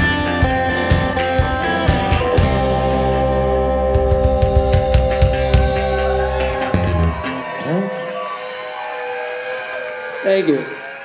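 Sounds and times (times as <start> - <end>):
rock band playing: 0.0 - 8.3
guitar chord ringing: 1.2 - 7.7
audience whooping and shouting: 5.2 - 11.0.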